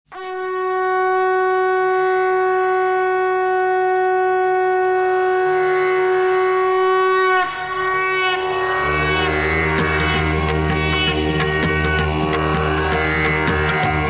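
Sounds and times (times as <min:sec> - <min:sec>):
conch shell blown: 0:00.1 - 0:14.0.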